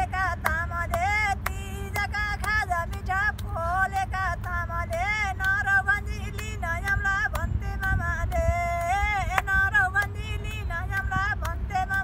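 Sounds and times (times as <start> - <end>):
couple singing: 0.0 - 12.0
wind rumble on microphone: 0.0 - 12.0
hand claps: 0.2 - 12.0.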